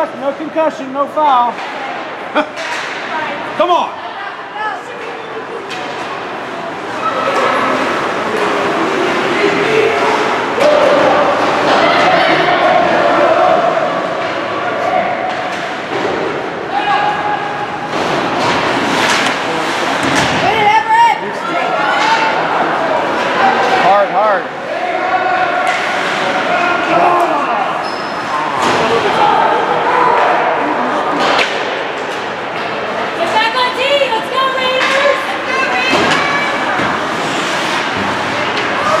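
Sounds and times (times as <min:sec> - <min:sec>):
pucks and sticks hitting boards: 0:01.5 - 0:03.1, 0:15.1 - 0:20.9, 0:25.6 - 0:26.9, 0:31.1 - 0:33.4, 0:34.6 - 0:39.0
spectators shouting: 0:20.5 - 0:31.3.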